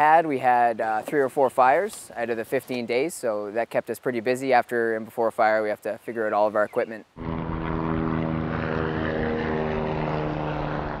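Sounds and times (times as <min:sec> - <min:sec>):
aircraft engine and propeller drone: 0:07.1 - 0:11.0.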